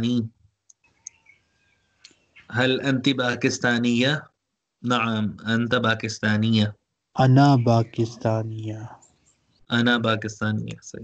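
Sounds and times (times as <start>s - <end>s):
man speaking: 0.0s - 0.3s, 2.5s - 4.2s, 4.8s - 8.9s, 9.7s - 11.0s.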